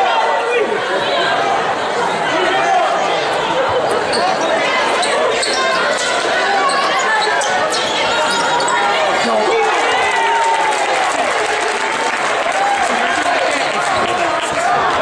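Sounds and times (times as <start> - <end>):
crowd voices echoing: 0.0 - 15.0.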